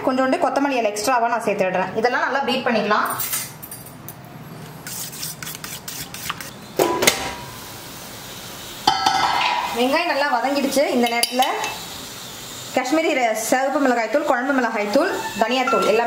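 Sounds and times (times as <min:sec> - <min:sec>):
woman's voice: 0:00.0 - 0:03.2, 0:09.8 - 0:11.7, 0:12.8 - 0:16.0
metal pot and lid clattering: 0:08.8 - 0:09.8, 0:15.6 - 0:16.0.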